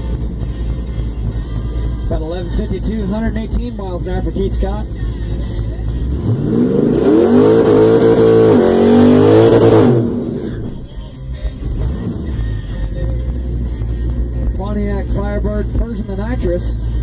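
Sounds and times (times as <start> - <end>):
car engine revving: 0.0 - 17.0
low idling rumble: 0.0 - 17.0.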